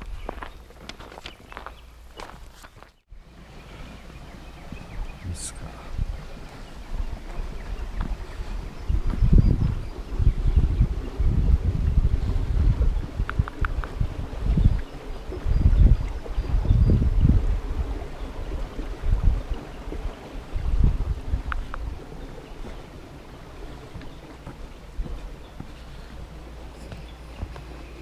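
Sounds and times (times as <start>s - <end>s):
small rocky stream: 0.0s - 28.0s
wind buffeting microphone: 3.1s - 28.0s.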